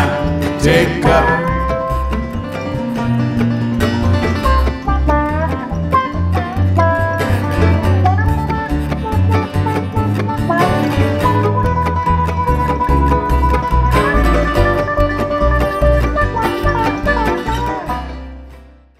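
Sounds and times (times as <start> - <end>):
bluegrass string band playing: 0.0 - 18.7.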